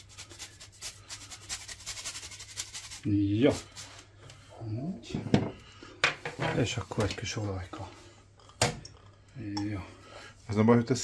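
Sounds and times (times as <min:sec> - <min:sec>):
cheese grating on metal grater: 0:00.0 - 0:03.9.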